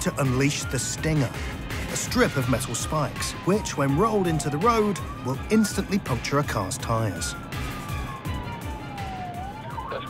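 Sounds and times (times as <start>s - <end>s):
background music with steady beat: 0.0s - 10.0s
police siren wailing: 0.0s - 10.0s.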